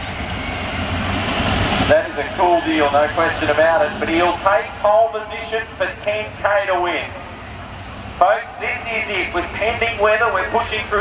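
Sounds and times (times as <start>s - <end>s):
race car engine rumbling at low revs: 0.0s - 11.0s.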